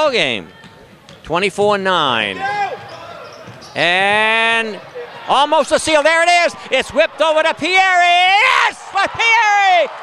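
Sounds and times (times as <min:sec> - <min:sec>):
man shouting excitedly: 0:05.3 - 0:10.0.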